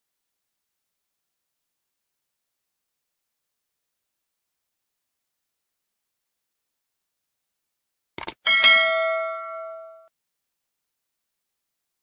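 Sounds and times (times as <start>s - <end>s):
bright bell ding: 8.5s - 10.1s.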